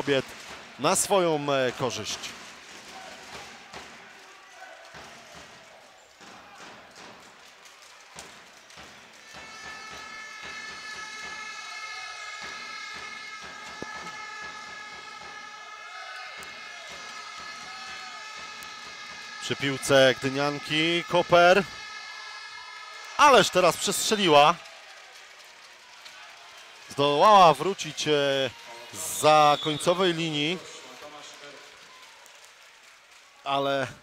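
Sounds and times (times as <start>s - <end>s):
crowd noise: 0.0s - 34.0s.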